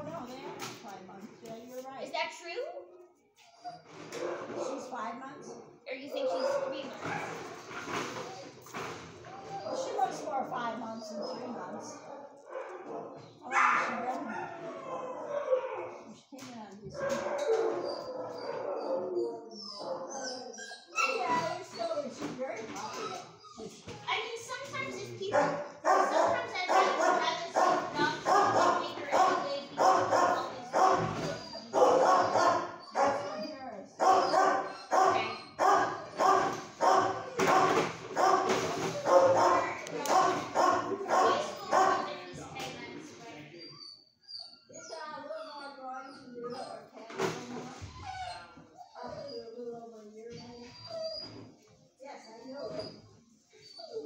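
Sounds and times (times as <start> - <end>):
dogs barking: 4.0 - 4.9, 5.5 - 7.6, 9.3 - 16.2, 17.0 - 21.9, 24.8 - 42.3.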